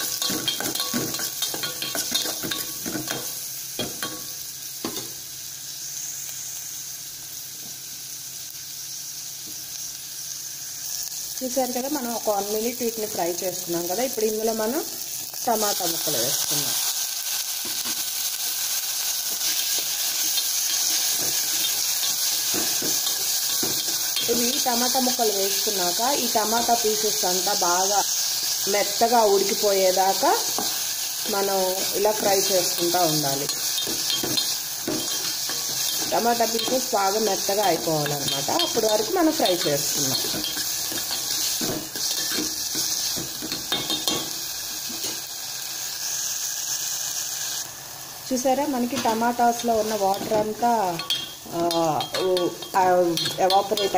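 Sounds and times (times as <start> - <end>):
vegetables sizzling in a pot: 0.0 - 53.9.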